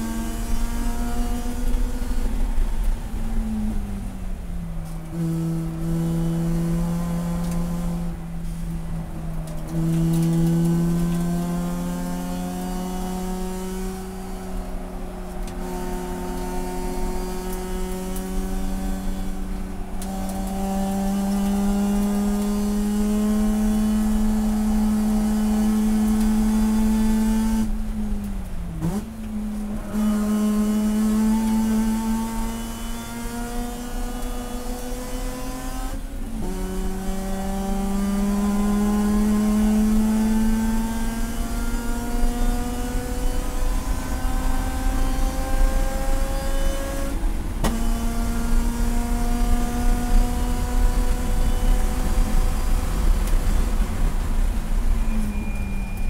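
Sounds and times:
racing car engine revving: 0:15.3 - 0:27.8, 0:29.8 - 0:54.7.

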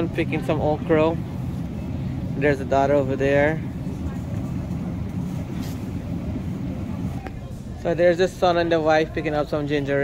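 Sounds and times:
low rumble of background noise: 0:00.0 - 0:10.0.

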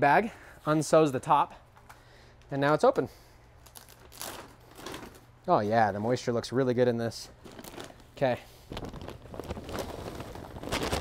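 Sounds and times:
soil bag rustling and crinkling: 0:03.6 - 0:05.2, 0:07.4 - 0:11.0.

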